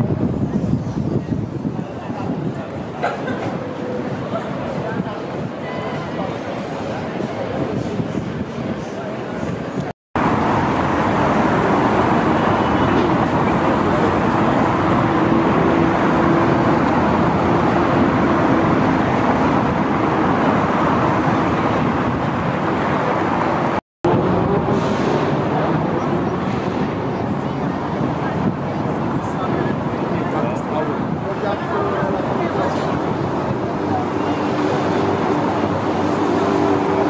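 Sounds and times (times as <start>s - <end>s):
pedestrians chatting: 0.0s - 37.0s
traffic noise: 0.0s - 37.0s.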